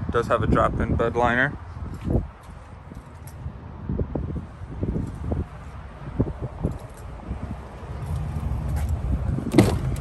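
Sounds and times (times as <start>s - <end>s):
footsteps on asphalt: 1.8s - 3.5s, 4.9s - 10.0s.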